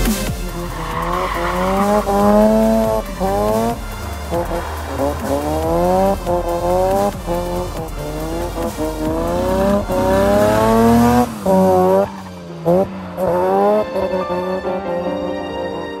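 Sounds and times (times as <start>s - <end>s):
car engine revving hard: 0.0s - 14.9s
tyres squealing on asphalt: 0.0s - 16.0s.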